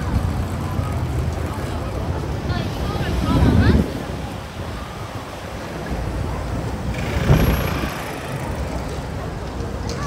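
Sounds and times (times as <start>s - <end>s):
chatter of passersby: 0.0s - 10.0s.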